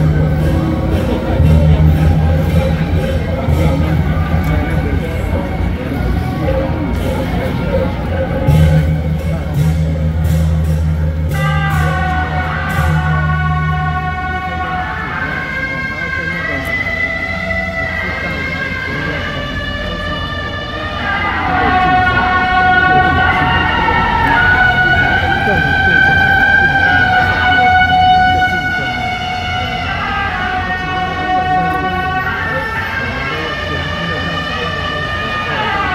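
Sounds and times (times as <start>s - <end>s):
sharp percussion strikes: 0.0s - 15.4s
shawm playing wavering melody: 0.0s - 35.9s.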